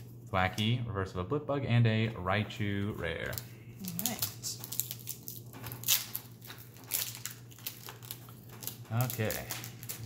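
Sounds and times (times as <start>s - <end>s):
low steady hum: 0.0s - 10.0s
foil wrapper crinkling and tearing: 3.0s - 10.0s.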